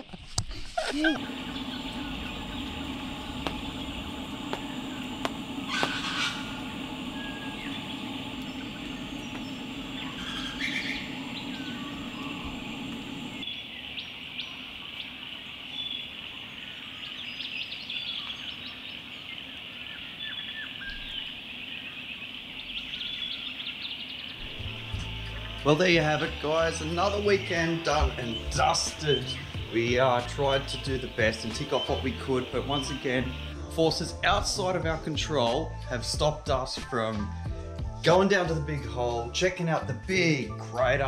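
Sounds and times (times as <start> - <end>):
birds chirping: 0.0 - 34.0
low hum: 1.0 - 15.7, 20.8 - 34.9
steady background hiss: 1.2 - 34.8.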